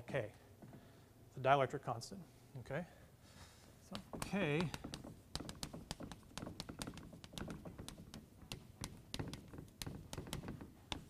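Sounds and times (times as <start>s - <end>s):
chalk tapping and scratching: 3.9s - 11.0s.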